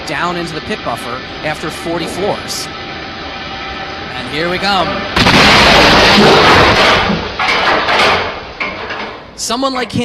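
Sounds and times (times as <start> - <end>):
loud rushing noise: 0.0 - 8.6.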